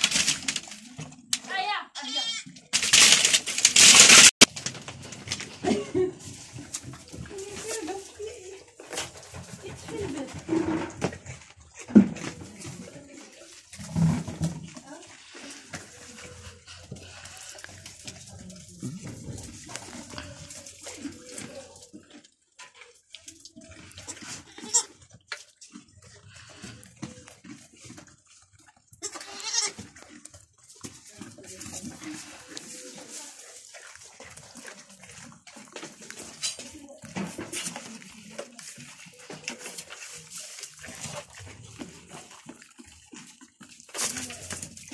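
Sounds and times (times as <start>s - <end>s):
goats feeding rustling: 0.0s - 1.8s, 2.6s - 44.9s
goat bleating: 2.0s - 2.6s, 24.0s - 25.0s, 29.0s - 30.0s.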